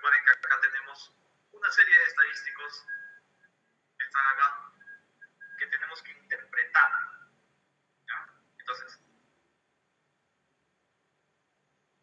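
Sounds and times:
thin phone-like voice: 0:04.0 - 0:07.3.

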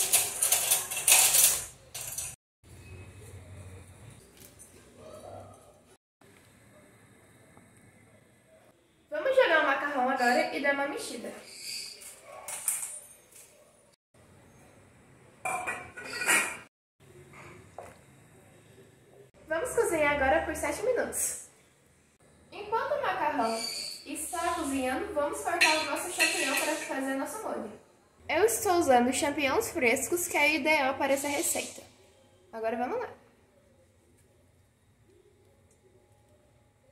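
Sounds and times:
cutlery scraping a dish: 0:15.5 - 0:16.7, 0:25.6 - 0:27.0.

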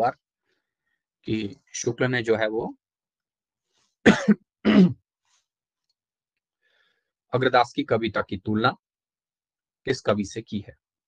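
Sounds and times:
person clearing throat: 0:04.1 - 0:05.0.

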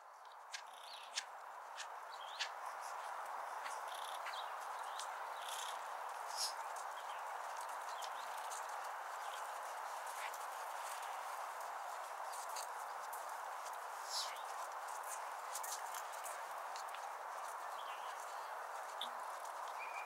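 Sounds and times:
background hiss: 0:00.0 - 0:17.0
horse hooves trotting on sand: 0:00.0 - 0:20.0.

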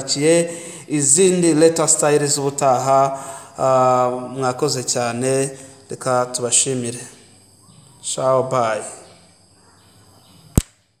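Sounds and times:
faint room noise: 0:00.0 - 0:11.0
sharp click: 0:10.5 - 0:10.8.

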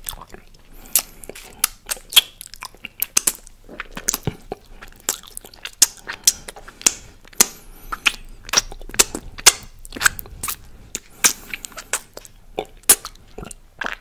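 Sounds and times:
chewing and lip-smacking: 0:00.0 - 0:14.0.

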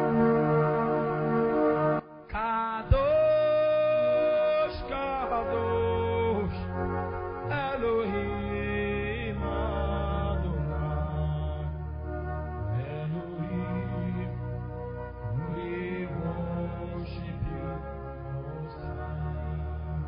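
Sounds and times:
keyboard chords: 0:00.0 - 0:20.0
steady bass: 0:02.9 - 0:20.0.

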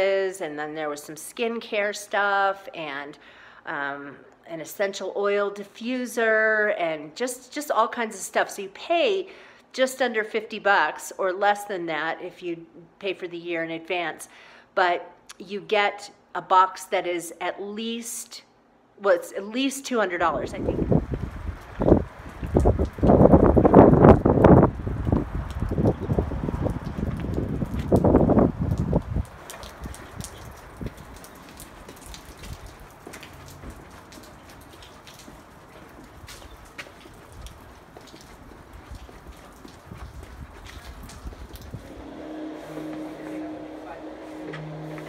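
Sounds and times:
wind buffeting microphone: 0:20.5 - 0:33.0, 0:36.1 - 0:45.0
footsteps on wet pavement: 0:20.9 - 0:45.0.

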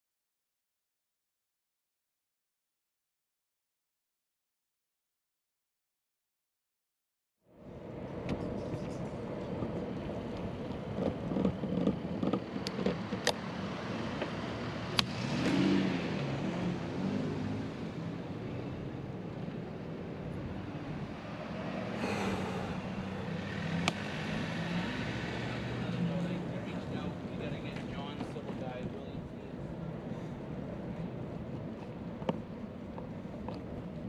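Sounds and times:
street traffic rumble: 0:07.5 - 0:34.0.

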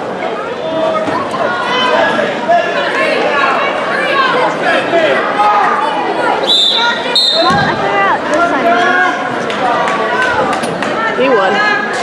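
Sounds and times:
spectators shouting: 0:00.3 - 0:12.0
referee's whistle blasts: 0:06.4 - 0:07.7.

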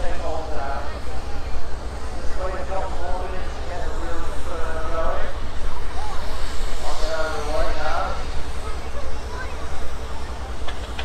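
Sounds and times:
tank engine rumble: 0:00.0 - 0:11.0.

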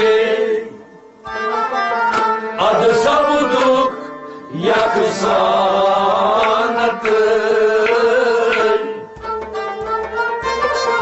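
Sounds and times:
men singing together: 0:00.0 - 0:00.8, 0:02.6 - 0:09.1
rabab: 0:01.1 - 0:11.0.

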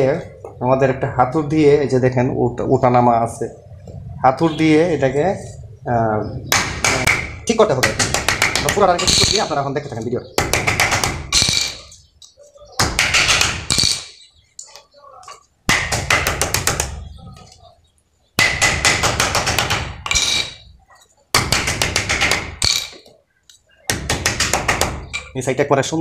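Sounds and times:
hammer striking metal core: 0:10.4 - 0:12.0, 0:18.4 - 0:20.6.

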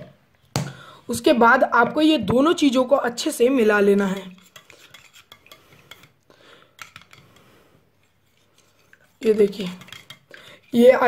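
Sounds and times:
spoon scraping in steel tumbler: 0:03.5 - 0:11.0.

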